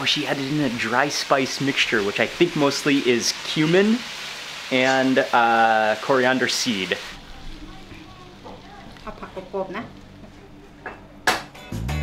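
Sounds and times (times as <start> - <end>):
wok sizzling: 0.0 - 12.0
soft voices: 6.7 - 10.8
music: 7.2 - 12.0.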